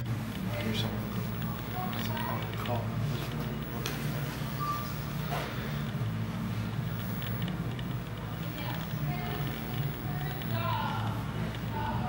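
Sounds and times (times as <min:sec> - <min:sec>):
short high-pitched beep: 0:04.5 - 0:05.0.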